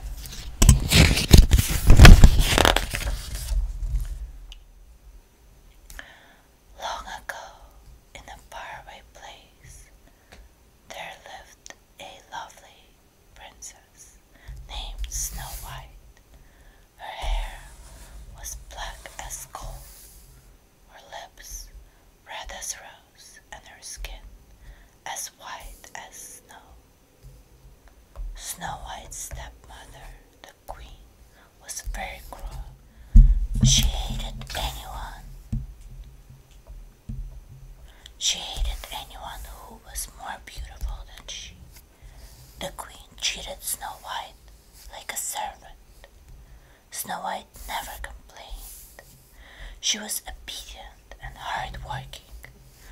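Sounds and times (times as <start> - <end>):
woman whispering: 6.8 - 9.9, 10.9 - 16.0, 17.0 - 19.9, 20.9 - 24.3, 25.0 - 26.8, 28.4 - 32.8, 33.6 - 35.3, 37.9 - 41.6, 42.6 - 46.1, 46.9 - 49.1, 49.8 - 52.9
soft low thumps: 31.9 - 41.1.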